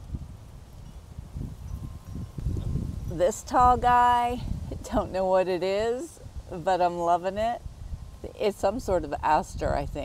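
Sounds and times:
low rumbling microphone noise: 0:00.0 - 0:10.0.

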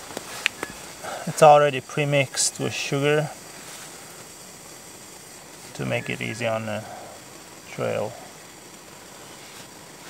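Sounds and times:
gas stove hissing: 0:00.0 - 0:10.0.

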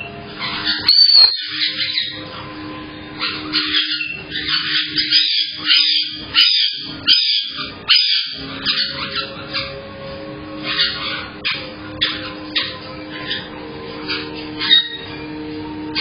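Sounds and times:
steady low hum: 0:00.0 - 0:05.0
parrots squawking: 0:00.0 - 0:16.0.

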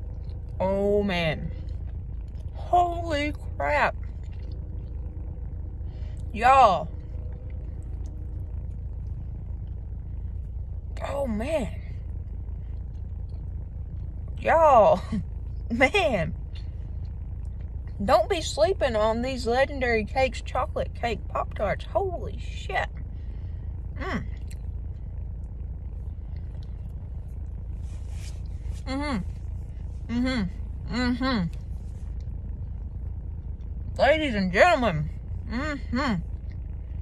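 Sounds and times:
faint chewing: 0:00.0 - 0:00.6, 0:01.5 - 0:02.6, 0:03.3 - 0:06.3, 0:06.9 - 0:10.9, 0:12.1 - 0:14.4
low car interior rumble: 0:00.0 - 0:37.0
person chewing food: 0:04.1 - 0:05.6.

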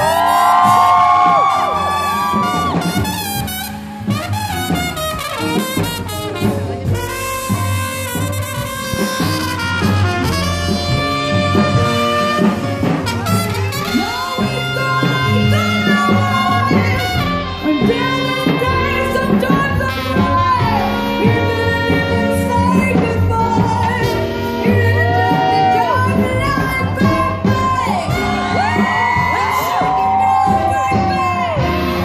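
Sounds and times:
jazz band playing: 0:00.0 - 0:32.0
trumpet playing high notes: 0:00.0 - 0:32.0.

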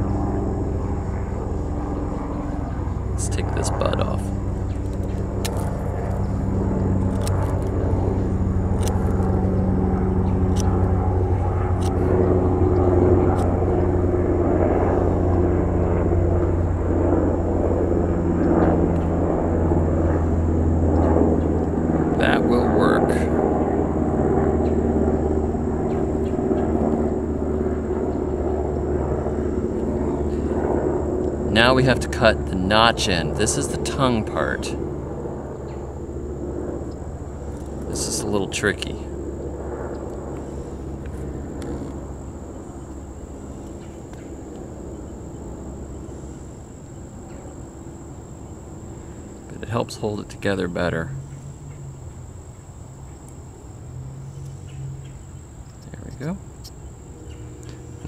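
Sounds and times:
engine drone: 0:00.0 - 0:58.0.

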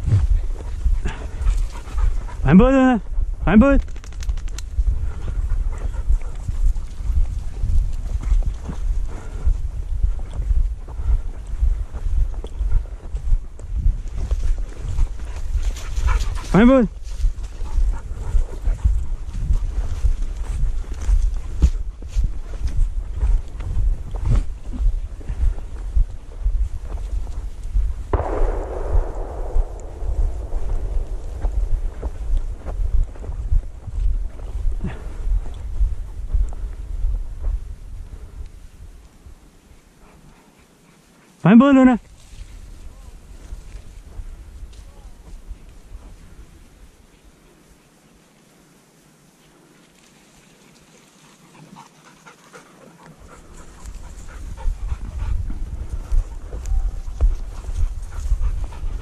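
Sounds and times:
footsteps through dry grass: 0:00.0 - 0:03.4, 0:04.3 - 0:48.6, 0:49.3 - 0:59.0
wind buffeting microphone: 0:00.0 - 0:39.5, 0:42.0 - 0:47.0, 0:53.2 - 0:59.0.

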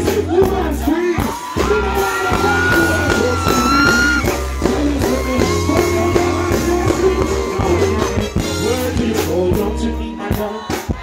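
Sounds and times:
live reggae band playing: 0:00.0 - 0:11.0
person singing: 0:00.0 - 0:11.0.

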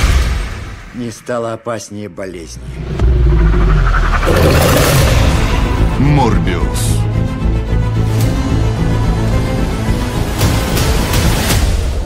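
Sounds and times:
rushing noise swell: 0:02.6 - 0:05.9
loud deep rumble: 0:02.6 - 0:06.0.

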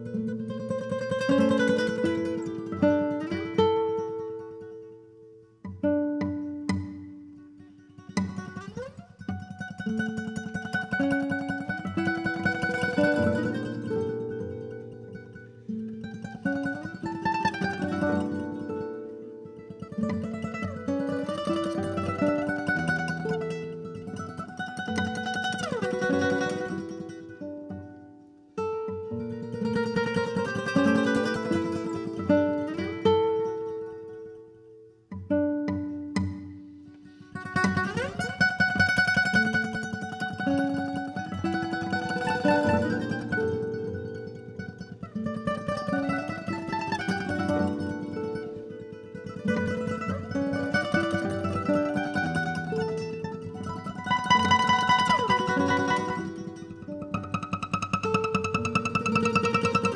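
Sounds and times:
looped classical guitar plucking: 0:00.0 - 0:59.9.

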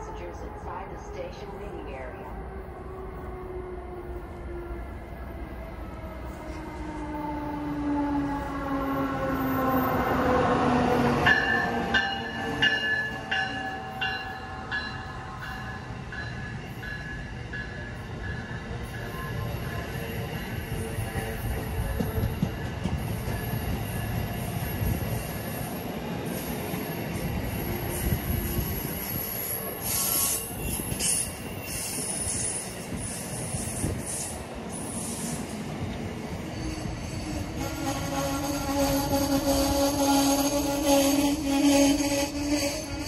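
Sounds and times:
train coaches rumbling on rails: 0:00.0 - 0:43.0
wheel squeal: 0:27.5 - 0:34.4.

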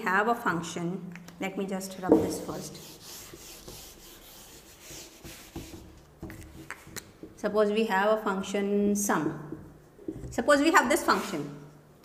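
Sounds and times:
eraser wiping whiteboard: 0:02.3 - 0:07.0, 0:11.0 - 0:11.6.

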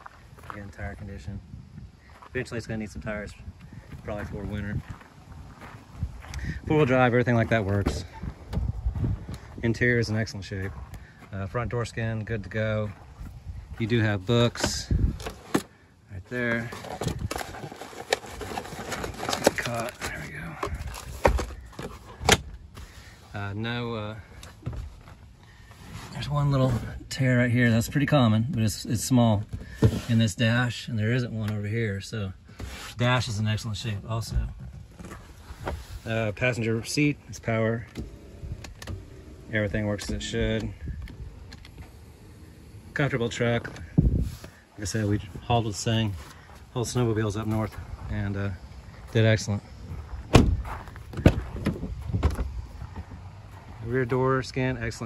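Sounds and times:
papers rustling in glove box: 0:12.9 - 0:23.2, 0:32.4 - 0:54.4.

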